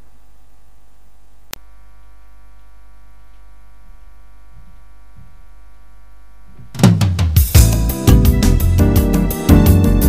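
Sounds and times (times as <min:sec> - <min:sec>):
low electrical hum: 0:00.0 - 0:06.9.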